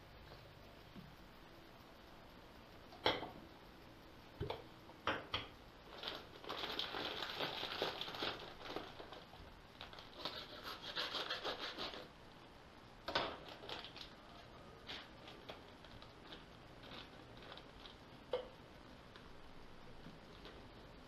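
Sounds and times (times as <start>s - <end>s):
foil pouch crinkling: 5.9s - 12.1s, 13.3s - 18.2s.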